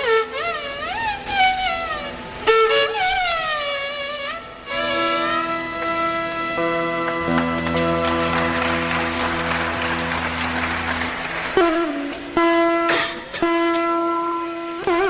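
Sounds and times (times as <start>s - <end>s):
veena flute and violin ensemble: 0.0s - 15.0s.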